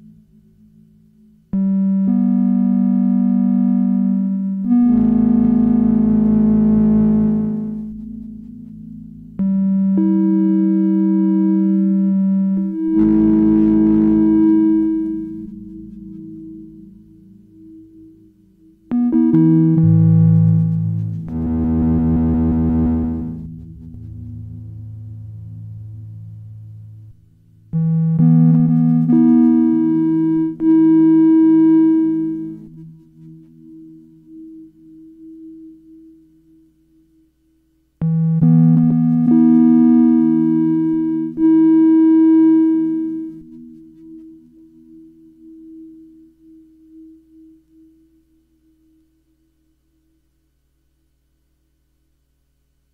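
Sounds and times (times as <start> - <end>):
sustained organ-like synthesizer tones: 1.5 - 36.2, 38.0 - 47.7.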